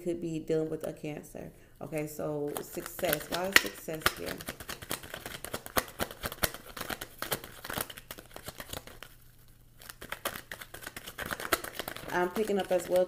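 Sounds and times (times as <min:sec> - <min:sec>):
cards being shuffled: 0:02.5 - 0:13.0.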